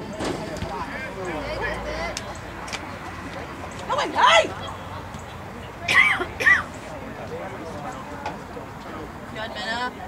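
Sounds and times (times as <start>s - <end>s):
people calling out: 3.9s - 5.0s.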